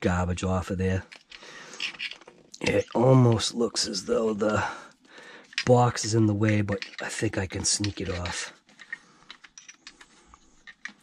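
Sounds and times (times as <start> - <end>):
plastic and metal parts clicking: 1.1 - 3.1, 5.4 - 11.0.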